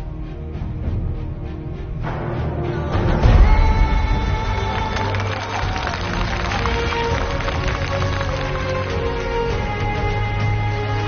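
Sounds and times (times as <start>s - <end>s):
sustained instrumental music: 0.0s - 11.0s
audience applauding: 4.4s - 9.8s.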